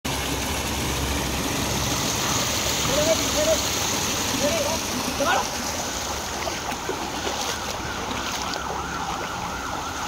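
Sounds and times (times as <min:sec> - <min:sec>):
water rushing over rocks: 0:00.1 - 0:10.0.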